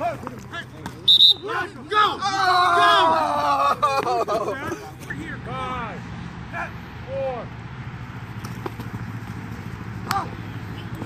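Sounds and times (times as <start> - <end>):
low rumble of field ambience: 0.0 - 11.0.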